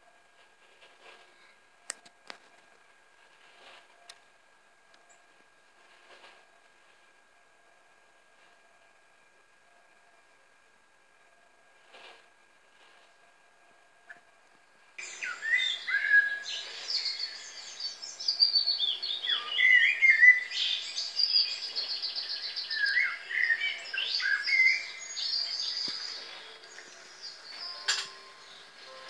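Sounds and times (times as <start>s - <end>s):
blackbird chirping and trilling: 15.0s - 28.7s.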